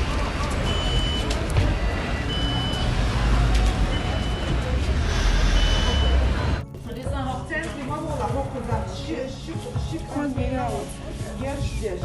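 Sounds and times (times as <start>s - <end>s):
traffic engine rumble: 0.0s - 12.0s
short high electronic beep: 5.5s - 6.4s.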